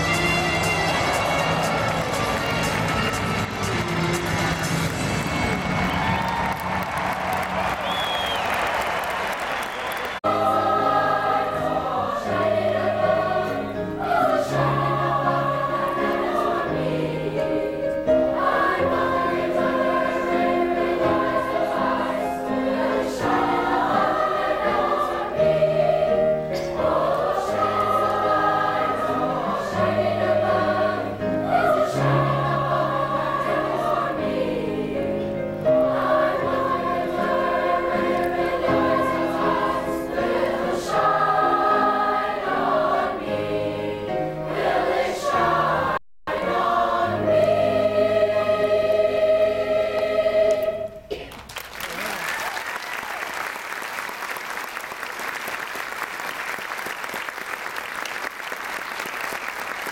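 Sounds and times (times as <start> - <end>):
girls' choir singing: 10.2 - 51.2.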